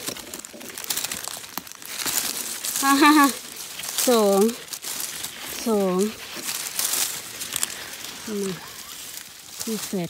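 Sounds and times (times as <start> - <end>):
dry leaves crackling and rustling: 0.0 - 10.0.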